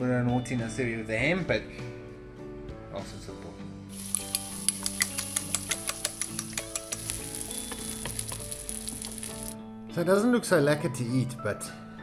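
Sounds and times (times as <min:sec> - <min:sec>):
egg and ham sizzling in a pan: 0:03.9 - 0:09.6.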